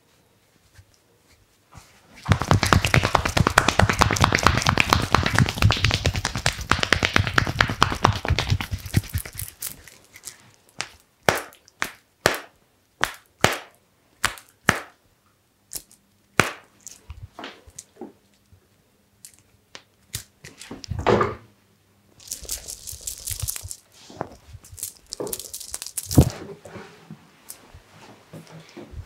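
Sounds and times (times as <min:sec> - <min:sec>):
hands slapping on arm: 0:02.2 - 0:09.5, 0:10.8 - 0:15.0, 0:16.4 - 0:16.7
sharp taps and smacks: 0:02.2 - 0:09.5, 0:10.8 - 0:15.0, 0:15.8 - 0:16.7.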